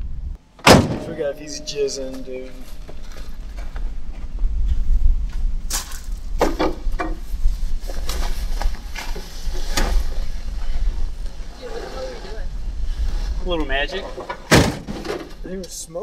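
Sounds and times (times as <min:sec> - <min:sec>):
steady low rumble: 0:00.0 - 0:06.4.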